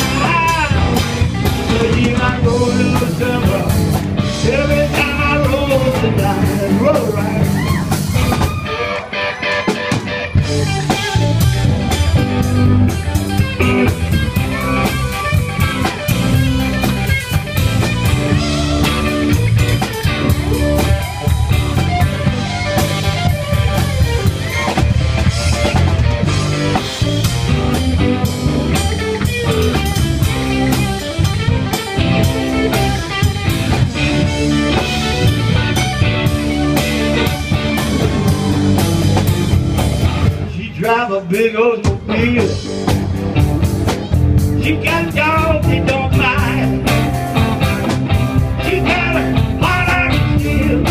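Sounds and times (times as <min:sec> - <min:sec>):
blues rock band playing: 0:00.0 - 0:50.9.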